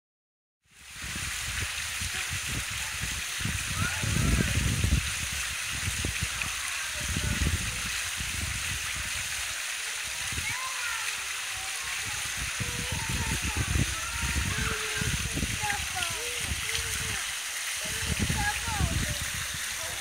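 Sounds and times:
fountain water splashing: 0.7s - 20.0s.

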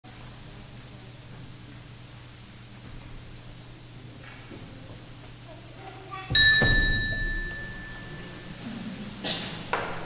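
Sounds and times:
small bell ringing: 6.3s - 8.6s.

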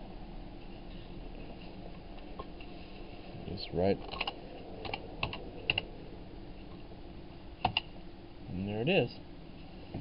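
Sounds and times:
computer input clicks: 4.0s - 5.8s, 7.6s - 7.9s.

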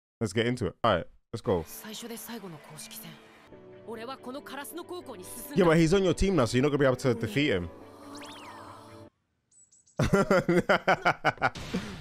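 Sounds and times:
person speaking: 5.2s - 7.7s.

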